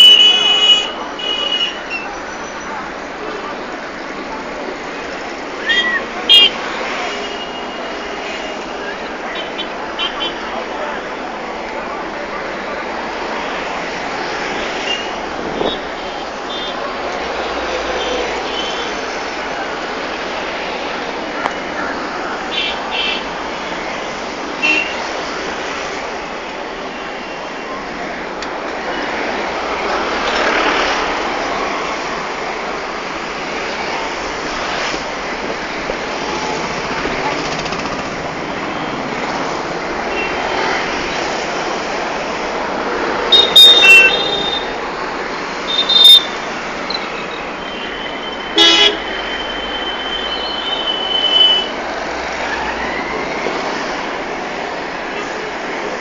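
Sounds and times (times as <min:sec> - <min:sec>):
vehicle horns tooting: 0:00.0 - 0:02.0, 0:05.6 - 0:08.7, 0:43.3 - 0:44.8, 0:45.7 - 0:51.8
street traffic noise: 0:00.0 - 0:56.0.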